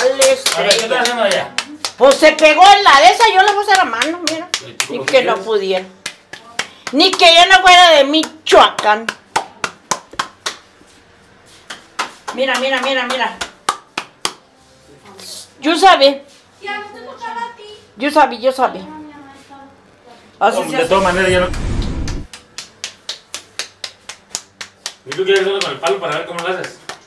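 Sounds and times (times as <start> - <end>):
hands slapping dough: 0.0 - 11.0, 11.6 - 14.4, 22.3 - 27.0
low rumble: 20.7 - 22.3.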